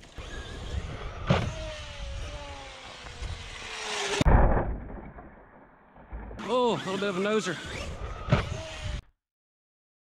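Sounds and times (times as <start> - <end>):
toy truck motor whining: 0.0 - 4.2, 6.4 - 9.1
truck landing thump: 4.2 - 5.3.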